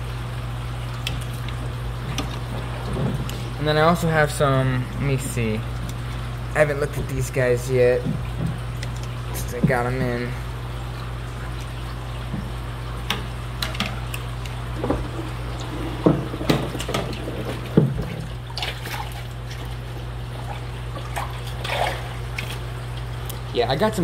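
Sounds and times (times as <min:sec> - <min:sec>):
water splashing and dripping: 0:00.0 - 0:23.5
steady low hum: 0:00.0 - 0:24.0.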